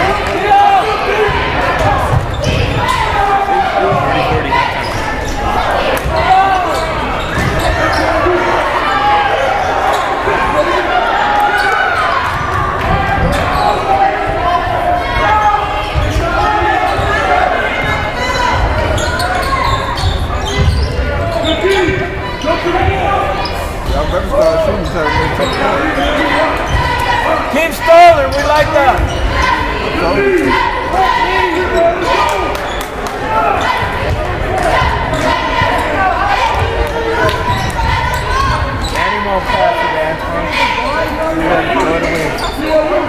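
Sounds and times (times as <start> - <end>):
spectators' voices echoing: 0.0 - 43.0.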